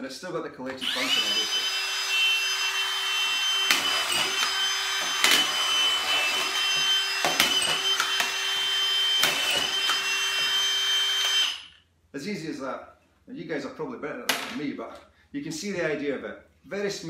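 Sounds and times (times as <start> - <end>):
cordless screwdriver motor whining: 0.8 - 11.8.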